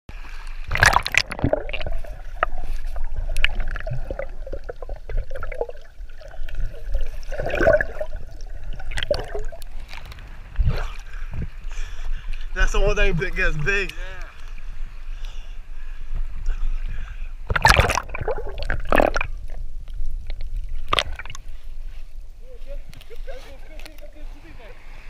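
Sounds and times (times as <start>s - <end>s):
water splashing and gurgling: 0.1s - 15.2s, 15.9s - 22.3s.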